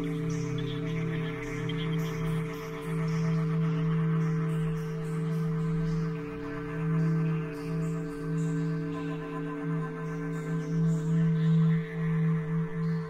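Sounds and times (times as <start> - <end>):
ambient drone music: 0.0 - 13.0.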